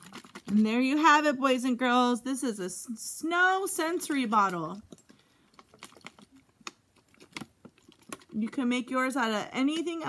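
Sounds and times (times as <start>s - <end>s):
plastic bottle crackling: 0.0s - 0.7s, 4.9s - 8.6s.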